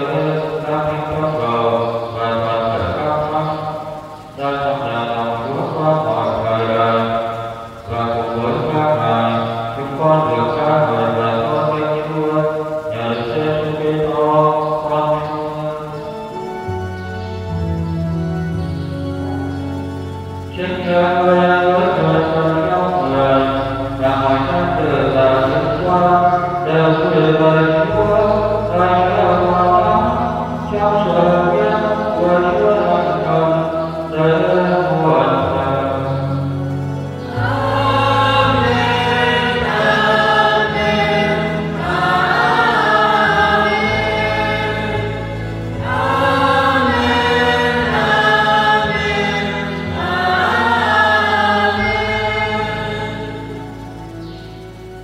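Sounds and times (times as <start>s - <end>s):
church choir singing a hymn: 0.0s - 55.0s
low accompaniment notes: 0.0s - 55.0s.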